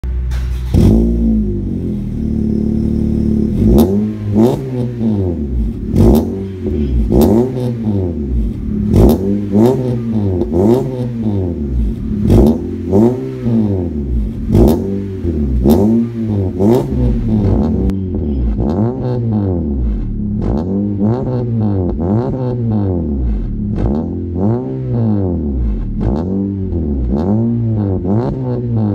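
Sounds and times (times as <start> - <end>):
car engine idling and revving: 0.0 - 28.9.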